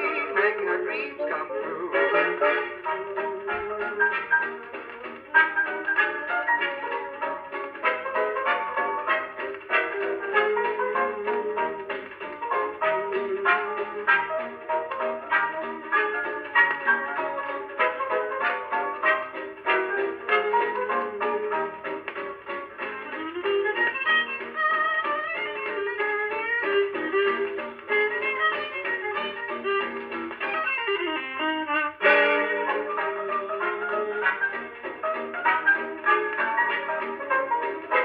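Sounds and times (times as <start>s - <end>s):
dance band orchestra on vinyl: 0.0s - 38.0s.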